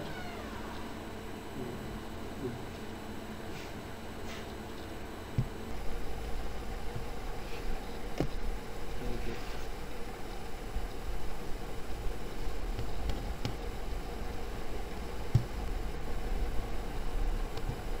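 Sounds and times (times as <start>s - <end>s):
faint hum: 0.0s - 18.0s
low rumble and hiss: 0.0s - 18.0s.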